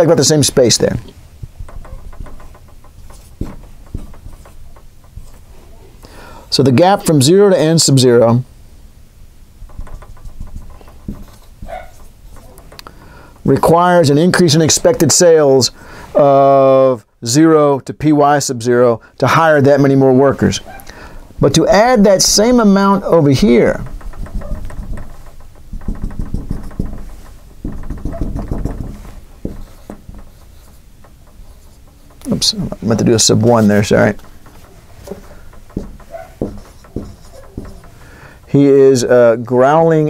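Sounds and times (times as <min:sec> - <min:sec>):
marker tapping on whiteboard: 0:01.4 - 0:05.5, 0:09.6 - 0:13.7, 0:21.8 - 0:38.4.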